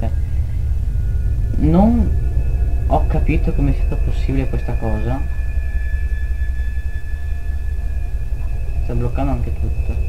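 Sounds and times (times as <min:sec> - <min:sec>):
high-pitched whine tones: 0:00.0 - 0:10.0
low rumble: 0:00.0 - 0:10.0.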